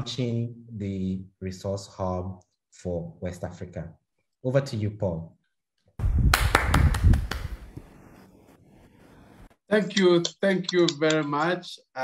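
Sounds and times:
hand clapping: 6.3s - 7.8s.

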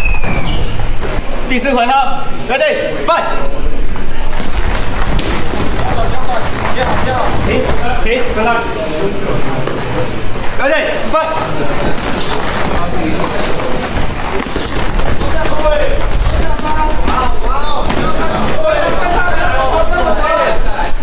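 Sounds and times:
people shouting: 14.3s - 21.0s.

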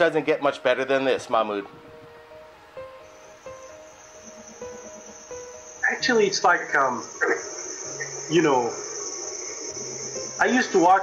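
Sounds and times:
soft music of held notes: 0.0s - 11.0s
crickets trilling: 2.1s - 11.0s.

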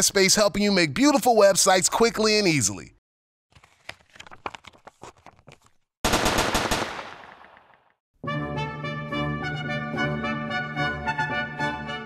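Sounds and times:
rapid sharp bangs: 6.0s - 7.8s.

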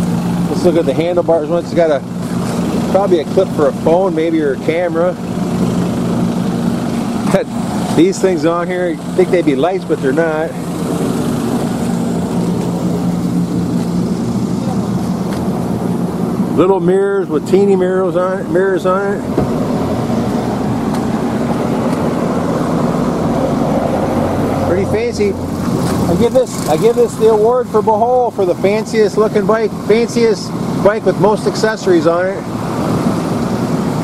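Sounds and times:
road traffic hiss: 0.0s - 34.0s
vehicle engine idling: 0.0s - 34.0s.

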